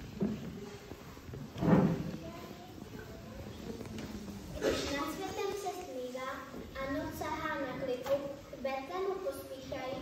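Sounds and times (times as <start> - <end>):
faint voices: 0.0 - 8.1.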